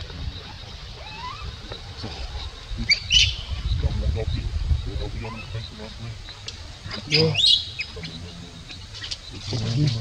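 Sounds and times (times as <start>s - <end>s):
infant monkey whimpering: 0.5s - 1.6s
infant monkey squeal: 1.0s - 1.6s.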